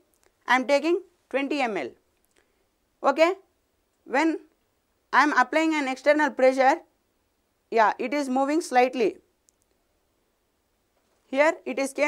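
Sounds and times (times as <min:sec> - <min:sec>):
person speaking: 0:00.0 - 0:02.0, 0:03.0 - 0:06.9, 0:11.2 - 0:12.0
faint click: 0:09.4 - 0:09.8.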